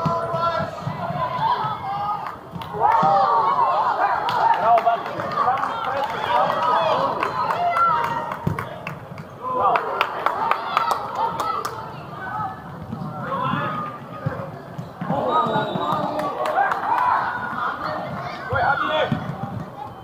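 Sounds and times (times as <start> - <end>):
players and spectators shouting: 0.0 - 8.5, 9.4 - 20.0.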